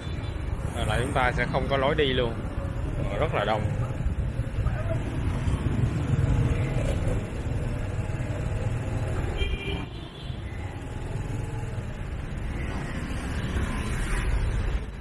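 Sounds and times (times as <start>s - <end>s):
motorbike and car engines rumbling: 0.0s - 15.0s
car horn toot: 9.4s - 10.4s.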